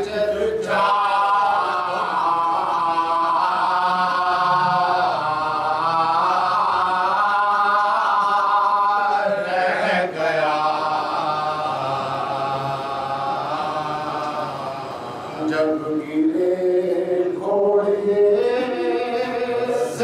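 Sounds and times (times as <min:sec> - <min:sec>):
men chanting together: 0:00.0 - 0:20.0.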